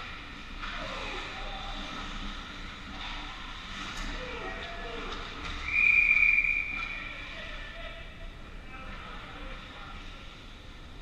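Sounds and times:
referee's whistle blast: 5.6 - 6.8.

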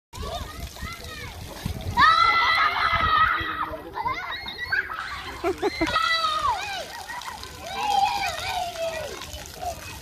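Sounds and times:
children playing: 0.2 - 10.0
water jets splattering: 0.2 - 10.0.

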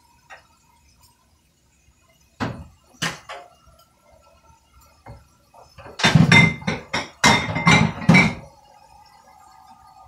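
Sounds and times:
dishes clinking in a sink: 2.4 - 3.9, 4.8 - 8.6.

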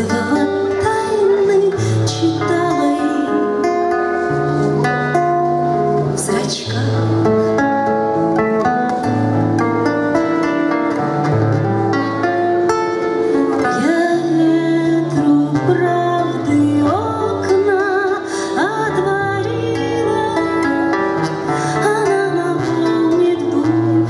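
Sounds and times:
woman singing with vibrato: 0.0 - 4.0, 6.1 - 7.5, 13.4 - 24.0
fingerpicked classical guitar: 0.0 - 24.0.

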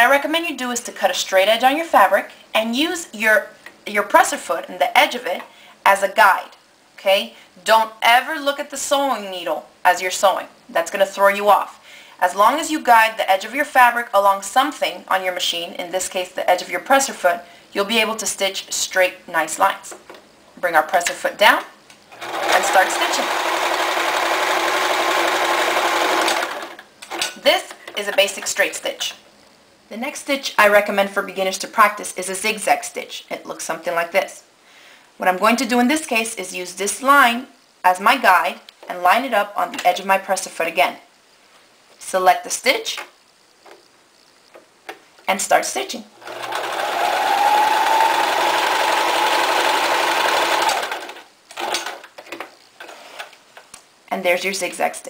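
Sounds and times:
sewing machine motor hum: 22.1 - 26.8, 46.2 - 52.1.

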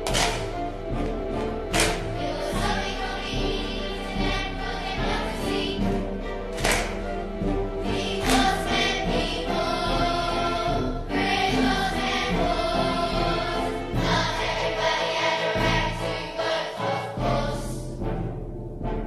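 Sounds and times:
choir singing sustained chords: 0.0 - 19.0
instrumental accompaniment: 0.0 - 19.0.

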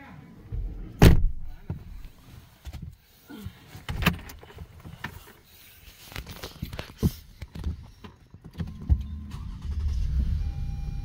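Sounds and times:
car engine starting and idling: 8.5 - 11.0.

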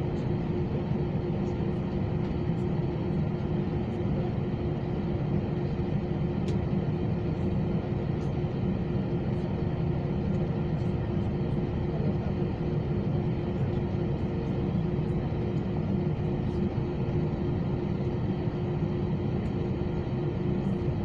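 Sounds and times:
aircraft engines idling: 0.0 - 21.0
constant cabin hum: 0.0 - 21.0.

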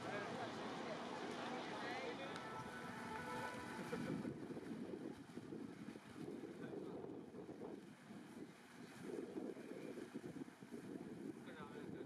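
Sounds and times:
quiet outdoor ambience: 0.0 - 12.0
wind buffeting microphone: 2.6 - 12.0.

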